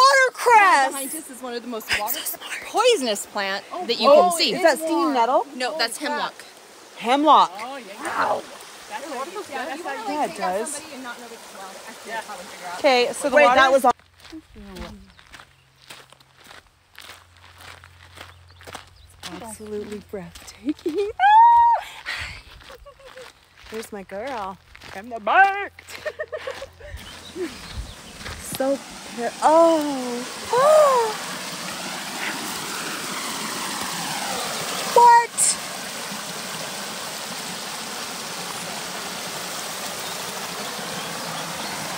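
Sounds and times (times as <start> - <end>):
stream running over rocks: 0.0 - 15.2, 17.3 - 41.9
footsteps on dirt trail: 13.6 - 30.0.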